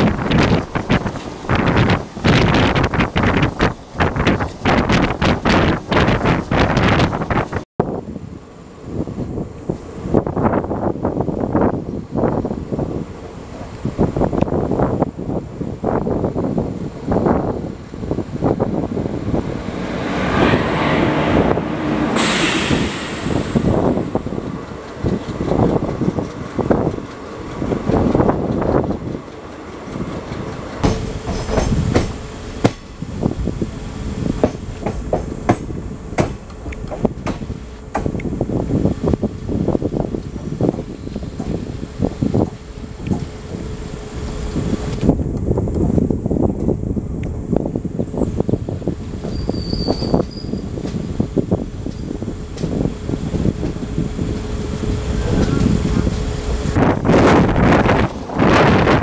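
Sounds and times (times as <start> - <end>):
hiss of passing train: 0.0 - 59.0
train wheels clattering over rails: 18.0 - 46.8, 48.0 - 59.0.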